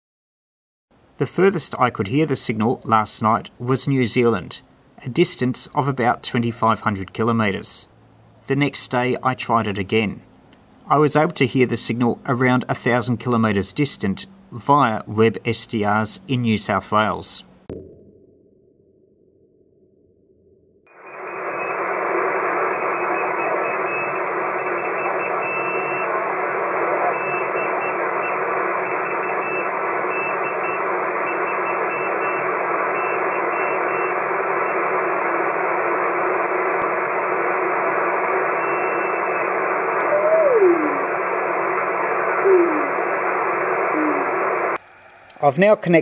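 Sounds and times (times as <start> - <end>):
weak morse code signal: 20.9 - 44.8
radio receiver hiss: 20.9 - 46.0.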